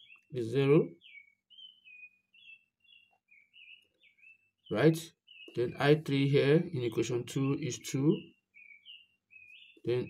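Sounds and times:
small bird chirping: 0:00.0 - 0:10.0.

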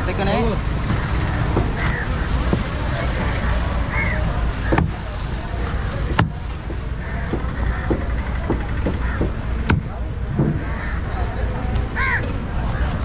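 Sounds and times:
low rumble of traffic: 0:00.0 - 0:13.0
cleaver chopping on wooden board: 0:00.9 - 0:02.8, 0:04.7 - 0:05.0, 0:06.0 - 0:10.6.

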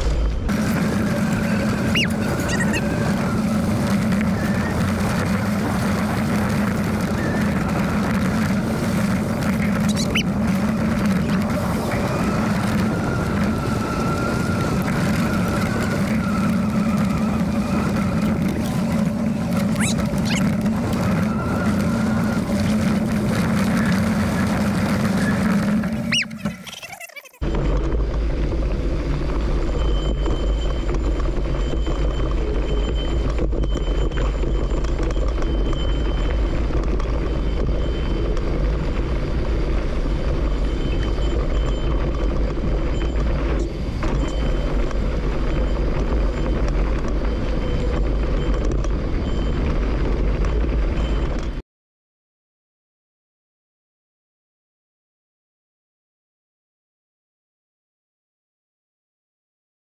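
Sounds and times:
wind rushing over microphone: 0:00.0 - 0:26.3
tyres rumbling on dirt trail: 0:00.0 - 0:51.6.

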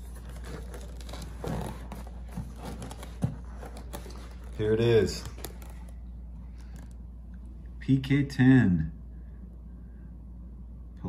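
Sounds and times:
plastic mesh rustling: 0:00.0 - 0:07.0
steady low hum: 0:00.0 - 0:11.0.

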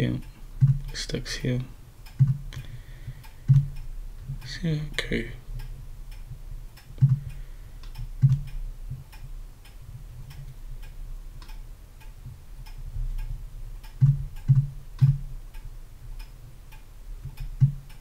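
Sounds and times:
low thumps: 0:00.0 - 0:00.9, 0:02.1 - 0:04.4, 0:05.5 - 0:09.1, 0:12.3 - 0:15.5, 0:17.2 - 0:17.9
steady low hum: 0:00.0 - 0:18.0
keyboard and mouse clicks: 0:07.8 - 0:08.6, 0:13.9 - 0:15.2, 0:17.3 - 0:18.0.

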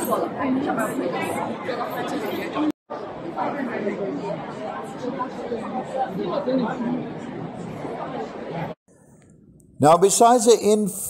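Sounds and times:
babble of overlapping voices: 0:00.0 - 0:08.8.

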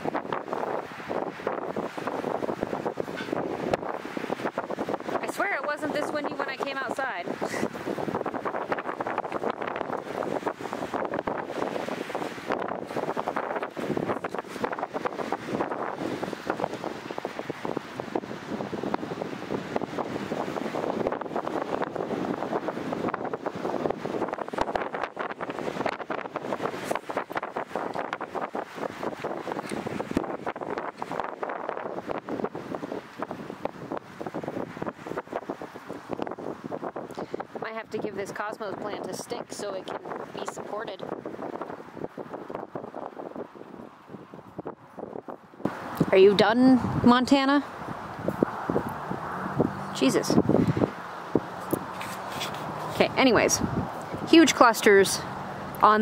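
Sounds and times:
wind on microphone: 0:00.0 - 0:56.0.

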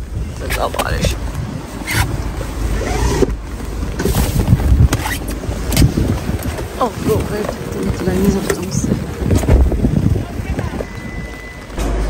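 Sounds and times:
wind buffeting microphone: 0:00.0 - 0:11.8.

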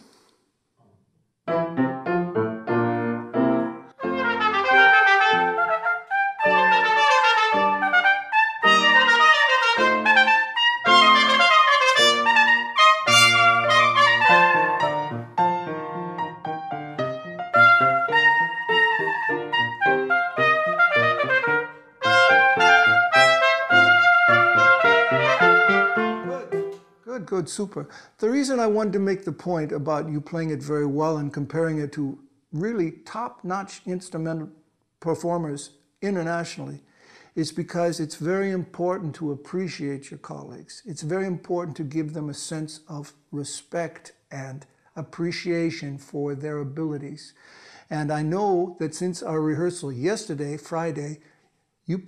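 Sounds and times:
piano accompaniment: 0:01.4 - 0:26.9
trumpet playing classical melody: 0:01.5 - 0:26.8.

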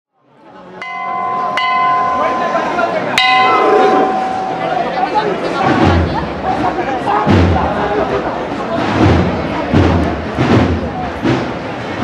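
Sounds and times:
crowd murmur: 0:00.2 - 0:12.0
metal bell struck with hammer: 0:00.8 - 0:05.4.

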